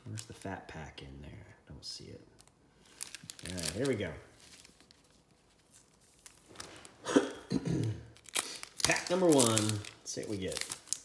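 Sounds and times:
foil pack crinkling: 2.4s - 7.1s, 8.1s - 11.0s
man clearing throat: 7.0s - 8.1s.

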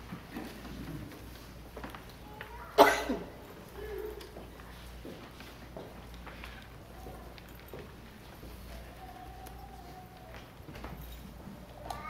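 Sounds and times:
person coughing: 2.8s - 4.1s.

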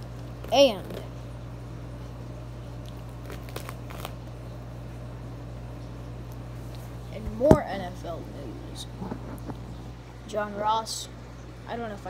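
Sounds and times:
steady low hum: 5.0s - 12.0s
hand handling a phone: 7.2s - 7.6s.

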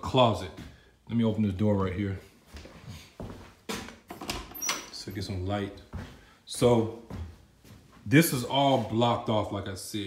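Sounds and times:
door squeaking: 4.1s - 5.2s.

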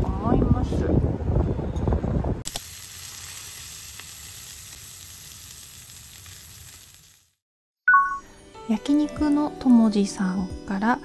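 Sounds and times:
meat sizzling in a frying pan: 2.5s - 7.4s
bright two-note chime: 7.9s - 8.3s.

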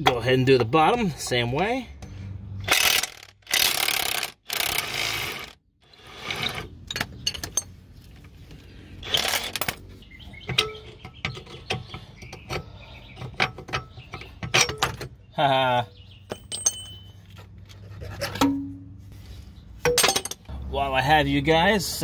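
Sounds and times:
metal clinks: 16.3s - 17.3s.

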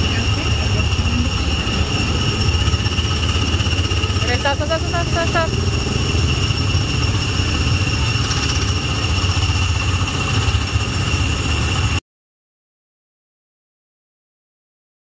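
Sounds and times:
small gasoline engine idling: 0.0s - 11.7s.

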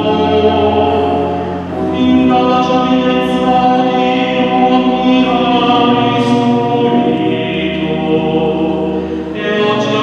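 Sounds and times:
mixed choir singing held chords: 0.0s - 10.0s.

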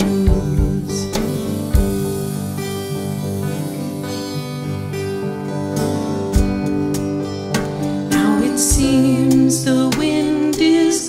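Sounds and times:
acoustic guitar chords and strums: 0.0s - 11.0s.

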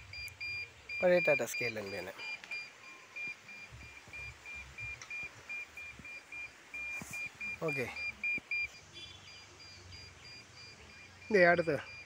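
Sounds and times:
signal meter short high beeps: 0.1s - 12.0s.

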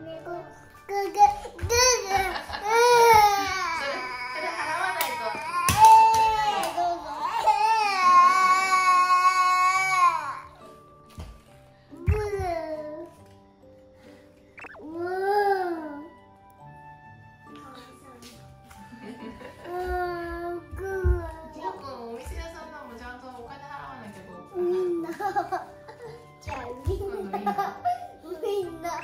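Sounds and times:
background music: 0.0s - 29.0s
toddler crying: 0.9s - 10.6s, 19.7s - 22.0s.

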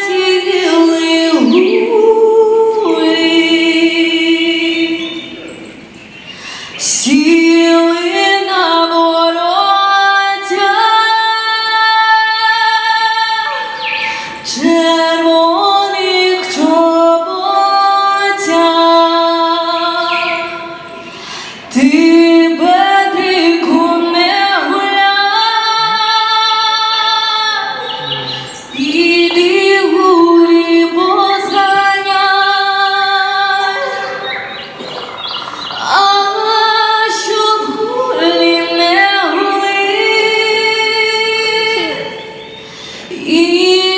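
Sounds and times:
woman singing long held notes: 0.0s - 5.2s
woman singing: 0.0s - 5.4s, 6.8s - 20.9s, 21.7s - 27.9s, 28.7s - 34.4s, 35.8s - 42.4s, 43.1s - 43.9s.

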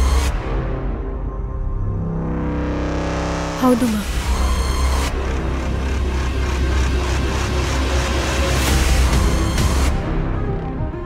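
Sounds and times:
dramatic background score: 0.0s - 11.0s.

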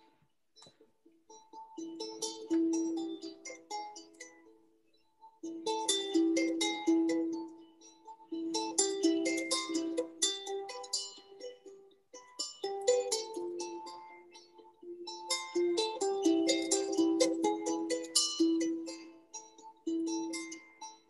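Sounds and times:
plucked string instrument melody: 0.0s - 21.0s.

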